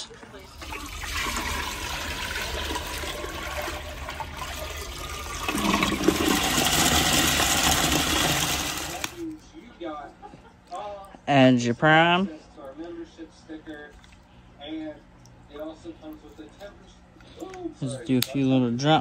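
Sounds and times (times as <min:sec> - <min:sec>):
water pouring into toilet bowl: 0:00.4 - 0:09.2.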